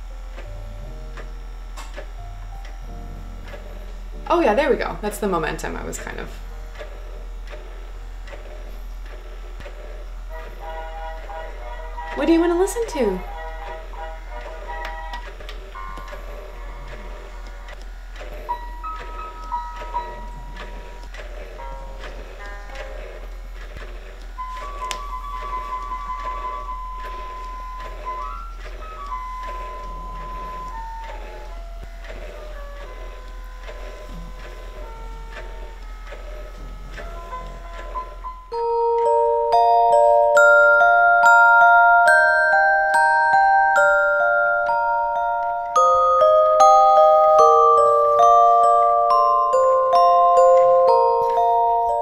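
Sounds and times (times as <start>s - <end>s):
steady low hum: 0.0s - 52.0s
electronic beeping lullaby: 10.4s - 23.3s, 24.4s - 52.0s
bright electronic tune: 38.0s - 52.0s.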